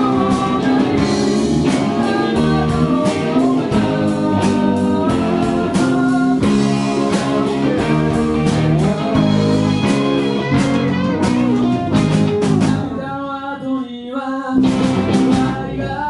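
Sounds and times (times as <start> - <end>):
drum hits: 0.0 - 13.0, 14.6 - 15.6
rock band playing live: 0.0 - 13.1, 14.6 - 16.0
person singing: 0.0 - 16.0.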